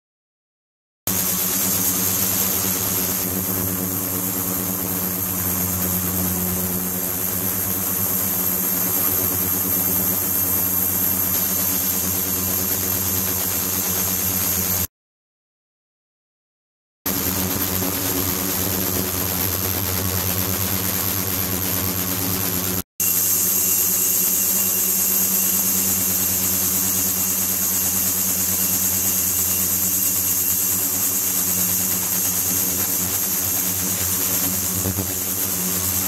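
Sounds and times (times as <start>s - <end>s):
ultrasonic cleaner hum and whine: 1.1s - 13.2s, 17.1s - 36.0s.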